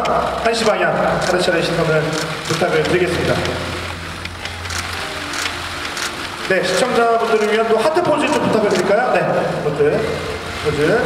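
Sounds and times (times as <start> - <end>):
low hum of hall: 0.0 - 11.0
camera shutters clicking: 0.6 - 3.6, 4.2 - 6.5, 7.2 - 9.0.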